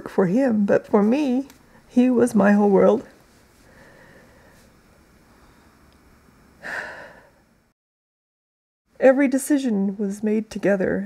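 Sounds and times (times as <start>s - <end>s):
woman breathing in: 3.6s - 4.7s, 6.6s - 7.5s.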